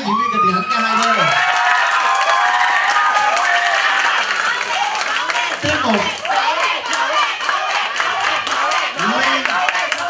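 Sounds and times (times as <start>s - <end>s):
crowd applauding: 0.6s - 10.0s.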